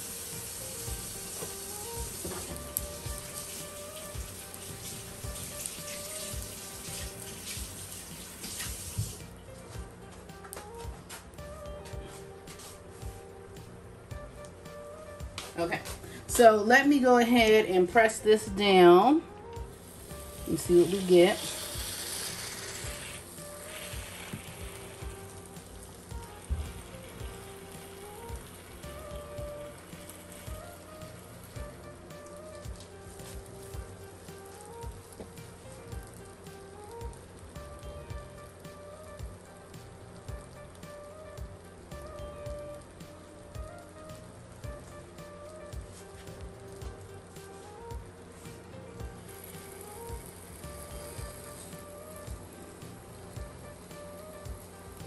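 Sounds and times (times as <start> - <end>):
batter sizzling and popping: 0.0 - 55.0
quiet background music: 0.0 - 55.0.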